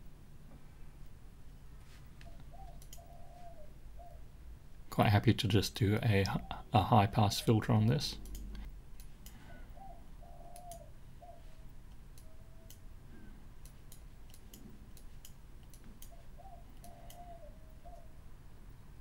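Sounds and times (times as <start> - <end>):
computer mouse clicks: 2.2 - 3.1, 8.2 - 9.4, 10.5 - 10.9, 11.9 - 12.8, 13.6 - 17.4
bird calling low notes: 2.2 - 4.3, 6.2 - 8.6, 9.4 - 11.6, 16.0 - 18.2.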